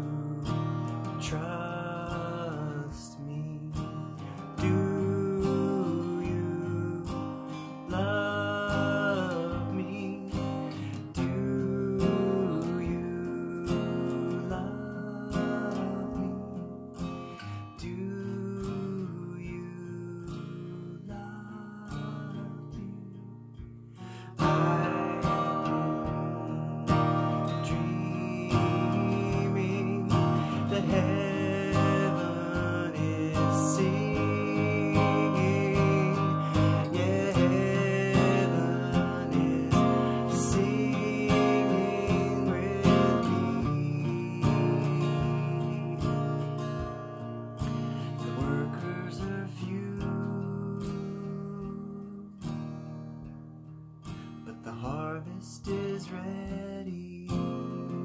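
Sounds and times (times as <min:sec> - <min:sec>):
acoustic guitar strumming chords: 0:00.0 - 0:58.0.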